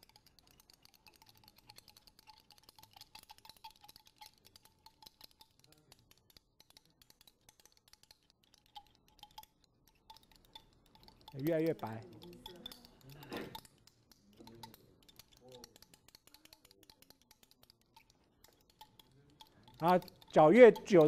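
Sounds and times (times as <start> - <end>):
glass rod clinking in flask: 8.6 - 21.0.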